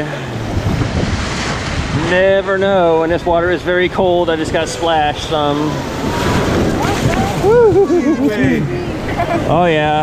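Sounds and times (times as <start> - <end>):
whitewater rushing: 0.0 - 10.0.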